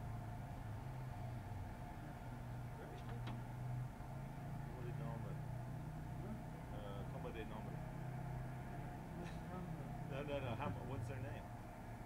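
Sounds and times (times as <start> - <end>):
engine idling low hum: 0.0 - 12.0.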